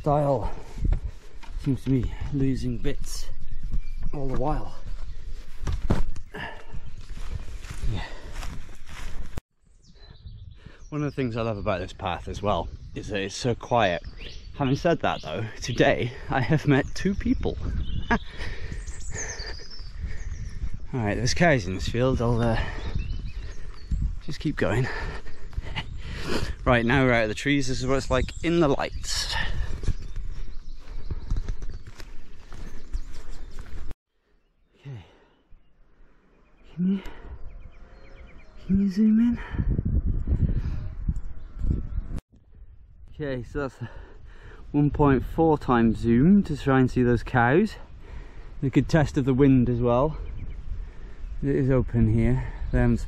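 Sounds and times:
low wind rumble: 0.0 - 33.9, 34.9 - 53.0
footsteps on grass and dry leaves: 3.6 - 9.4, 29.4 - 34.0.

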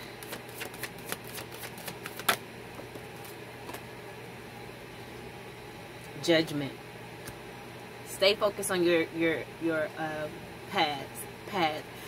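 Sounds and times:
cards being shuffled by hand: 0.0 - 3.9.

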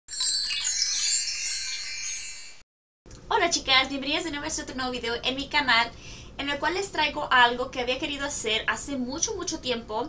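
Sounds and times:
high shimmering chime: 0.1 - 2.6.

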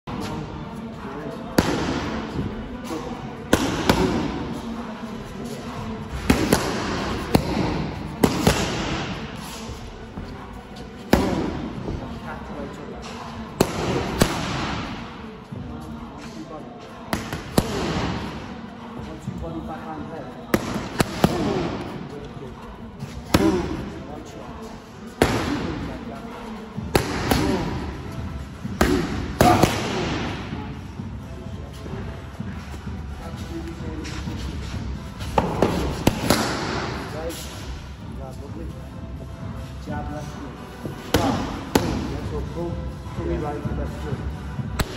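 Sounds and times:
boxing gloves striking mitts: 6.1 - 9.2, 26.9 - 27.8.

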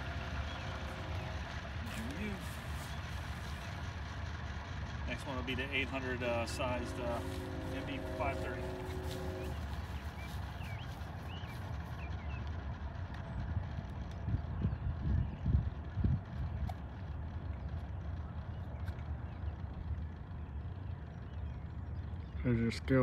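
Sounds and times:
low outdoor rumble: 0.0 - 23.0
footsteps on asphalt: 0.8 - 3.9, 7.0 - 12.6.

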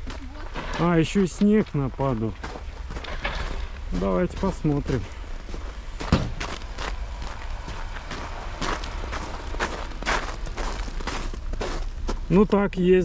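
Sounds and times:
footsteps on icy snow: 0.0 - 13.0
sharp thud: 6.0 - 6.6.

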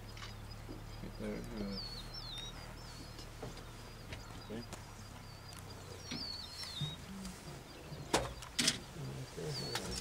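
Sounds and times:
bird singing warbling phrases: 0.0 - 10.0.

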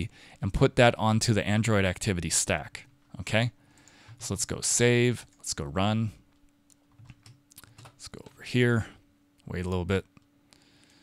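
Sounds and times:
faint steady hum: 0.0 - 11.0
computer keyboard keystrokes: 6.7 - 8.4.

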